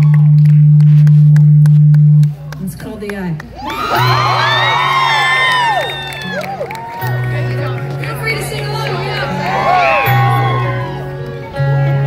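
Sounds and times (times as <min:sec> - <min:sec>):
faint crowd whoops: 0:03.6 - 0:07.4, 0:09.2 - 0:11.2.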